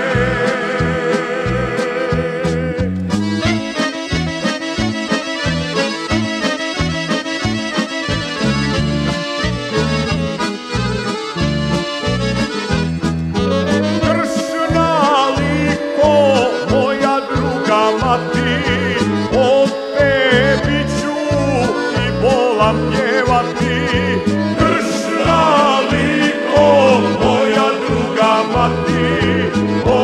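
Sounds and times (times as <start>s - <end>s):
person singing: 0.0s - 2.9s, 13.6s - 30.0s
accordion playing: 0.0s - 30.0s
bass line: 0.0s - 30.0s.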